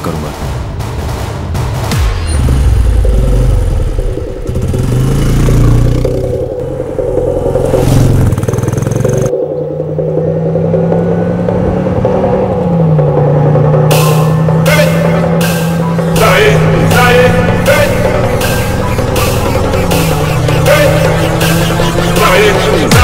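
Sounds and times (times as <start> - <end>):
motorcycle engine revving: 1.9 - 23.0
steady engine drone: 2.7 - 23.0.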